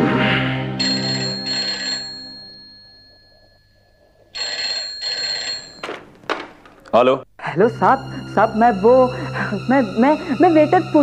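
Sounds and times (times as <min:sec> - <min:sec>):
telephone ringing: 0:00.8 - 0:06.2.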